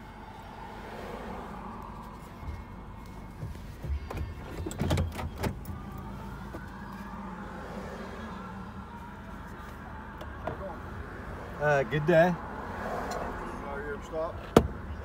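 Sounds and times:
engine hum in vehicle cab: 0:00.0 - 0:15.0.

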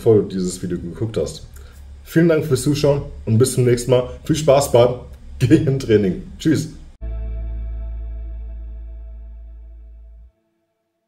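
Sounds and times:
guitar chord ringing: 0:07.0 - 0:10.8.

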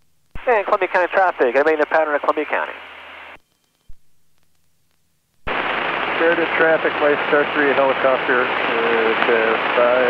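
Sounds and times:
aircraft radio call: 0:00.4 - 0:03.4, 0:05.5 - 0:10.0.

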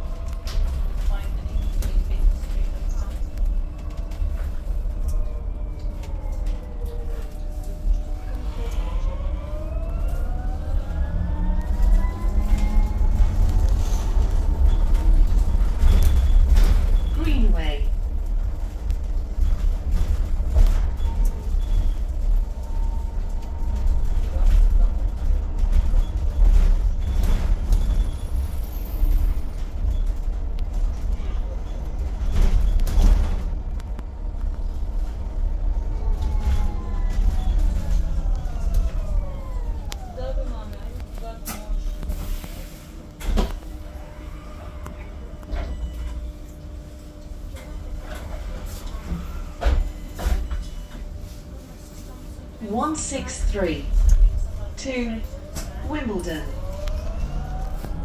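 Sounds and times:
road and body rumble: 0:00.0 - 0:58.0
electric bus motor whine: 0:03.2 - 0:58.0.

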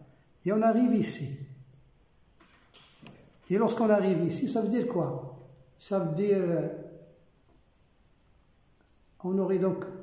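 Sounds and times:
marker pen writing on board: 0:07.4 - 0:09.2.

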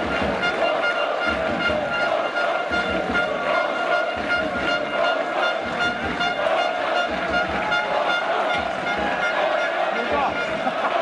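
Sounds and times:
pulsing horn tone: 0:00.0 - 0:10.6
crowd chanting: 0:00.0 - 0:11.0
steady drumbeats: 0:00.0 - 0:11.0.

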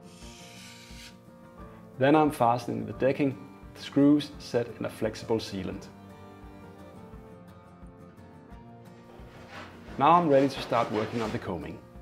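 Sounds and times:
quiet background music: 0:00.0 - 0:12.0
wood rubbed on sandpaper: 0:09.1 - 0:11.8.

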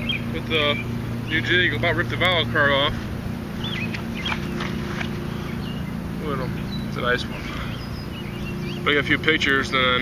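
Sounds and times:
low mechanical hum: 0:00.0 - 0:10.0
high bird chirps: 0:03.6 - 0:09.0.

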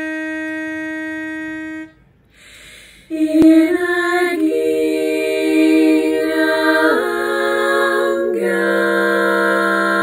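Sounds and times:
pitch pipe note: 0:00.0 - 0:02.0, 0:03.1 - 0:10.0.

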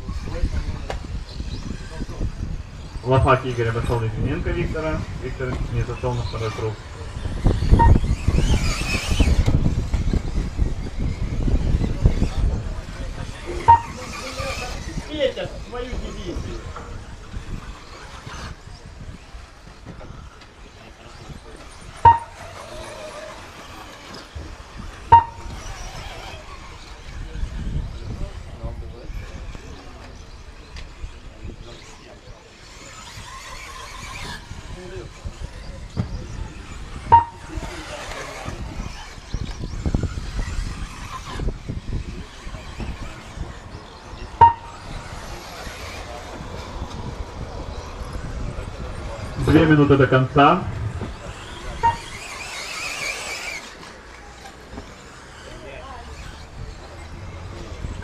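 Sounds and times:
voices outdoors: 0:00.0 - 0:58.0
short sharp electronic beeps: 0:07.8 - 0:08.1, 0:13.6 - 0:14.2, 0:22.0 - 0:22.5, 0:25.1 - 0:25.8, 0:37.1 - 0:37.6, 0:44.4 - 0:44.9, 0:51.8 - 0:52.1.

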